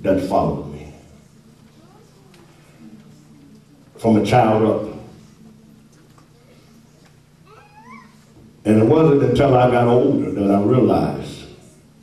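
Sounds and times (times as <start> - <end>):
faint high rising cry: 7.4 - 8.2.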